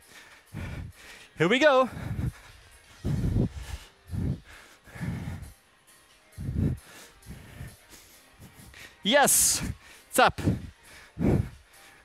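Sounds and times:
breathy exhalations: 0:00.2 - 0:05.5, 0:09.6 - 0:11.6.

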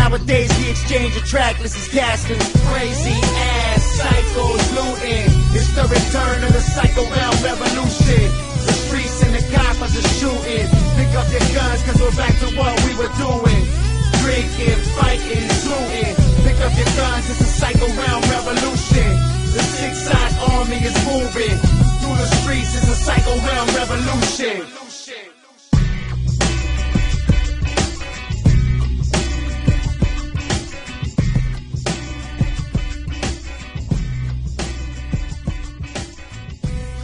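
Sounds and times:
heavy bass and drum hits: 0:00.0 - 0:01.5, 0:02.1 - 0:24.4, 0:25.8 - 0:37.0
rapping over a beat: 0:00.0 - 0:26.0.

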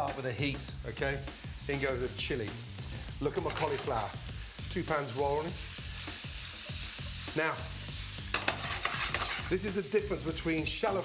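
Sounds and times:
food sizzling in hot oil: 0:00.0 - 0:11.0.

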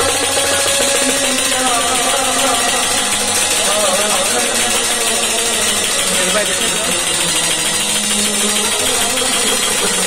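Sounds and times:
harmonium chord: 0:00.0 - 0:10.0
man singing: 0:00.0 - 0:10.0.

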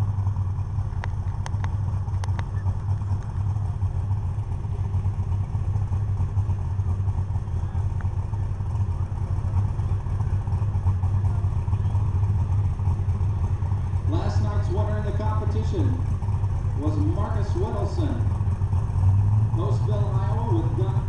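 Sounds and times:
tractor engine low rumble: 0:00.0 - 0:21.0.

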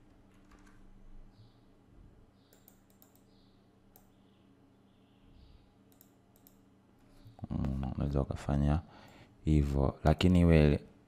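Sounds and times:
low steady hum: 0:00.0 - 0:11.0
keyboard and mouse clicks: 0:00.3 - 0:00.8, 0:02.5 - 0:03.3, 0:05.9 - 0:06.6.

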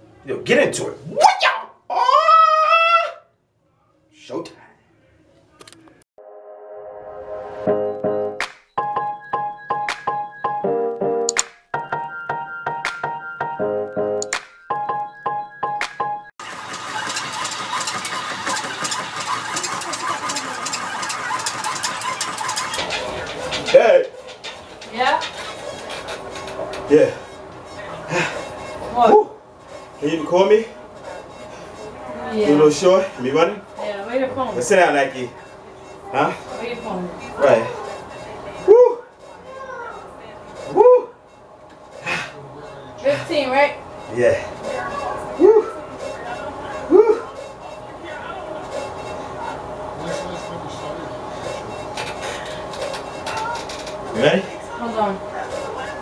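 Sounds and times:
treadmill motor and belt: 0:16.4 - 0:56.0
low voiced hum: 0:35.3 - 0:56.0.

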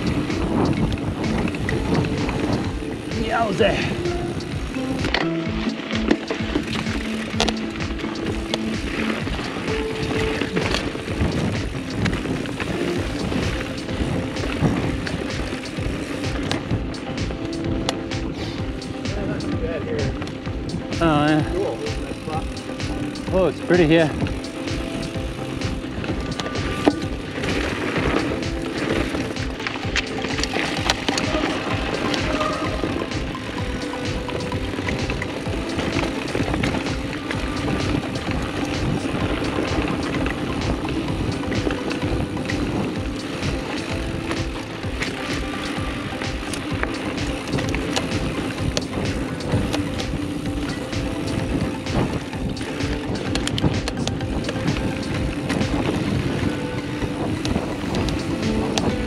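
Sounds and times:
bike rattling over bumps: 0:00.0 - 0:59.0
bike tyres on dirt: 0:00.0 - 0:59.0
wind on microphone: 0:00.0 - 0:59.0.

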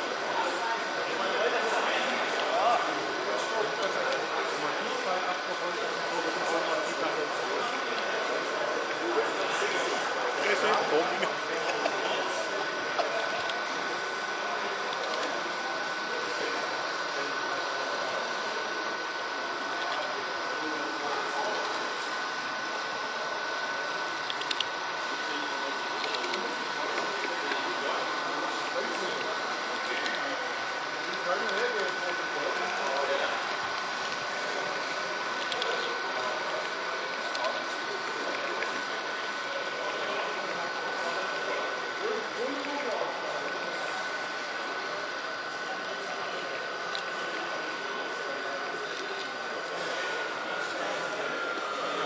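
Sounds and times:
murmur of voices: 0:00.0 - 0:52.0
model train motor whine: 0:12.5 - 0:52.0.

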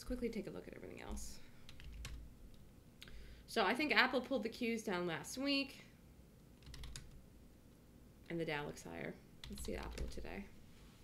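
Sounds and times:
computer keyboard keystrokes: 0:01.7 - 0:02.6, 0:06.6 - 0:07.2, 0:09.4 - 0:10.2.

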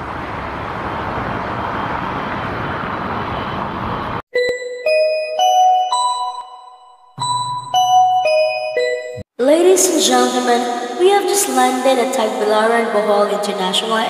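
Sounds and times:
jet airliner roar: 0:00.0 - 0:04.2
cabin chime notes: 0:04.3 - 0:09.3.

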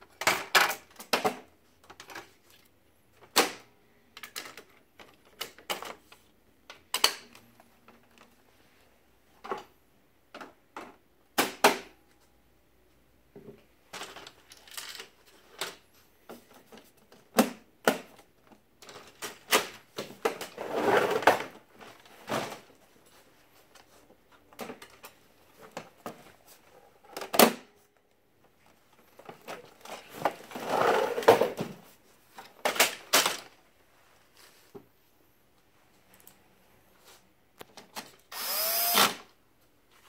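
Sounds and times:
plastic parts clicking and snapping: 0:00.1 - 0:02.4, 0:03.2 - 0:06.0, 0:06.6 - 0:08.3
plastic parts scraping and sliding: 0:18.8 - 0:27.3, 0:28.5 - 0:33.6.

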